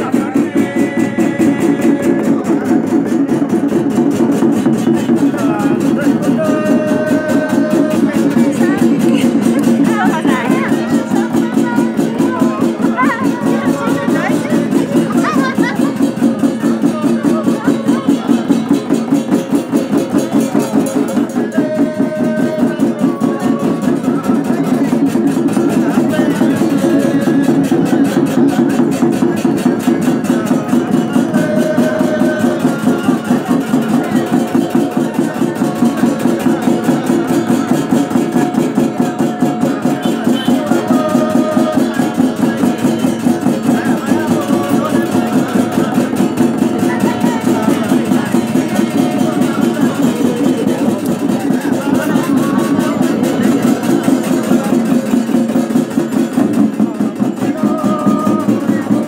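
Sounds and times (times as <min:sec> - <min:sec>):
ritual drumming: 0:00.0 - 0:59.0.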